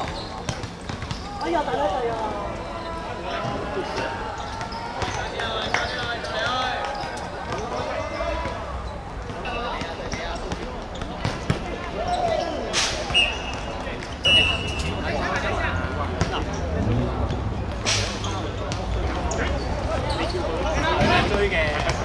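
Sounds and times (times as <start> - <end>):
players calling out: 0.0 - 22.0
referee whistle blast: 13.0 - 13.6, 14.2 - 15.0.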